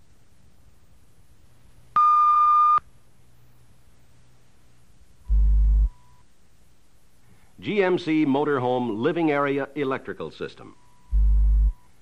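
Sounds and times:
faint background hiss and hum: 0.0s - 12.0s.

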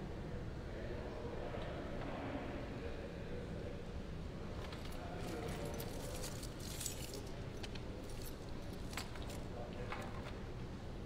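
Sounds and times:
faint indistinct voices: 0.1s - 11.0s.

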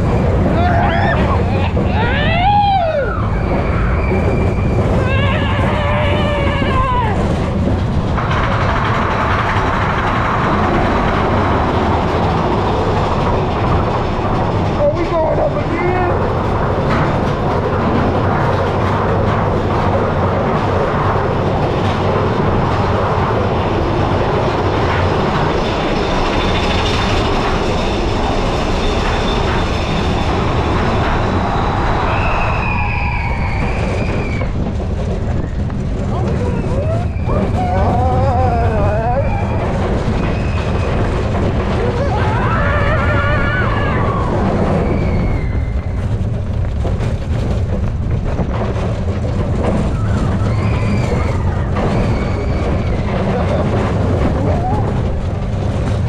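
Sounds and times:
roller coaster wheels rumbling: 0.0s - 56.0s.

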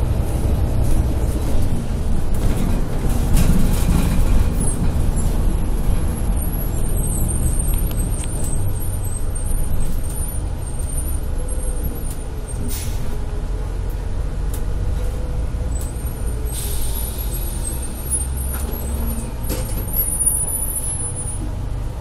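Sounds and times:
bus engine and road rumble: 0.0s - 22.0s.

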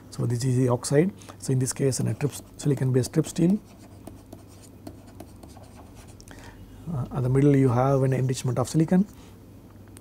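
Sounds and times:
stylus scratching on tablet: 1.8s - 6.2s.

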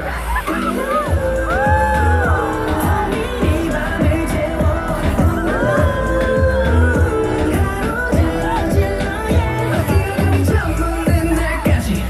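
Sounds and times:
pop dance song over speakers: 0.0s - 12.0s.

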